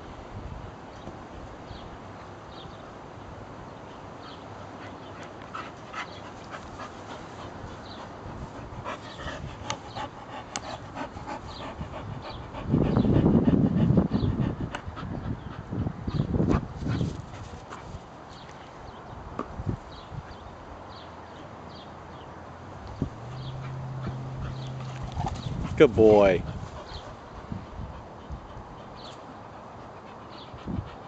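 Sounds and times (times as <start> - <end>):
dog panting: 4.7 - 18.0, 23.1 - 31.0.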